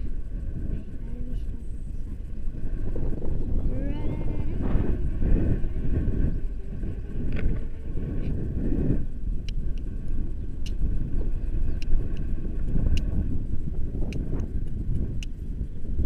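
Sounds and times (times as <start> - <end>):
wind buffeting microphone: 0.0 - 16.0.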